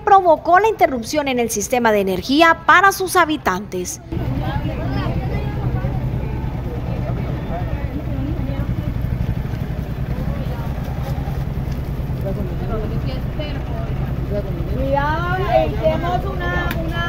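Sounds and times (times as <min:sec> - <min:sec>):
people talking: 0:00.0 - 0:17.0
motorcycle engine idling: 0:04.0 - 0:17.0.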